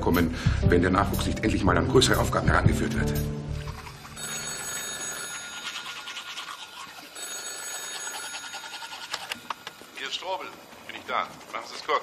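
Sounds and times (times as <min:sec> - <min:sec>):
telephone ringing: 0:03.8 - 0:10.4.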